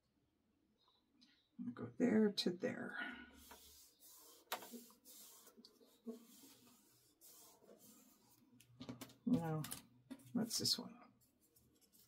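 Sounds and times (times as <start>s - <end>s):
paper rustling and tapping: 4.4s - 4.9s.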